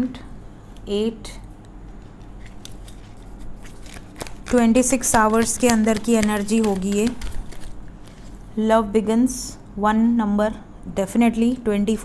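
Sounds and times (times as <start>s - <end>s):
steady low hum: 0.0s - 12.0s
card clicks and rustles: 1.9s - 8.4s.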